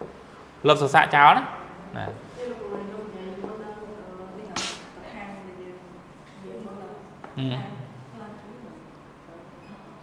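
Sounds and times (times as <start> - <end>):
short sharp hiss: 4.5 - 5.0.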